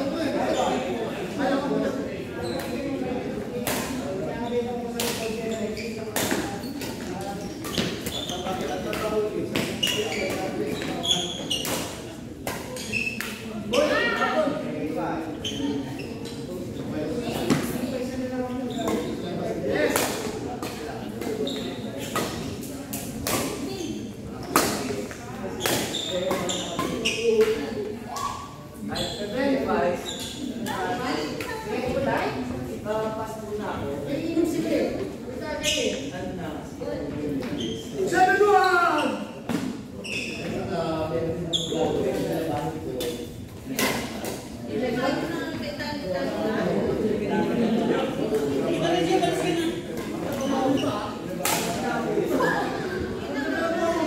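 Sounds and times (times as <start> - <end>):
people talking: 0.0 - 39.3, 40.0 - 54.0.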